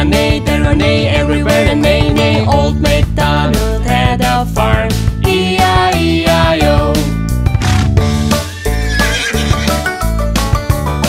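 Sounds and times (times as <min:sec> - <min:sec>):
instrumental children's music: 0:00.0 - 0:11.0
cartoon horse whinny: 0:08.4 - 0:10.1.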